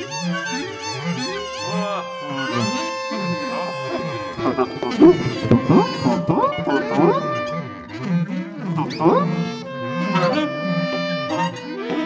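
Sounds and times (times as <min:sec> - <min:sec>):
saxophone ensemble improvising: 0:00.0 - 0:12.0.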